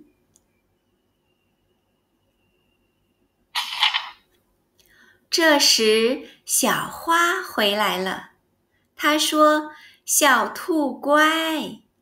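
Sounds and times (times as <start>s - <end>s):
page turning rustle: 3.6s - 4.2s
single click: 3.6s - 4.2s.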